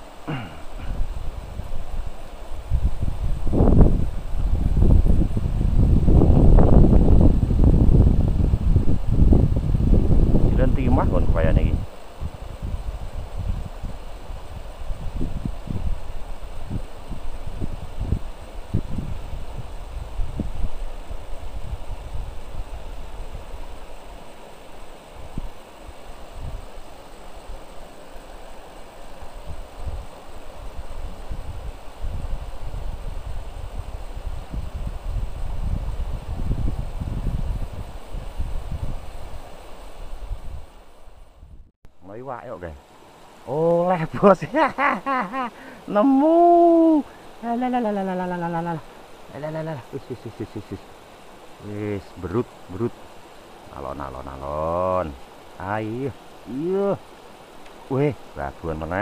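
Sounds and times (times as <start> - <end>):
wind buffeting microphone: 0.0 - 24.2, 29.2 - 41.7
river rushing: 0.0 - 41.3, 41.9 - 59.0.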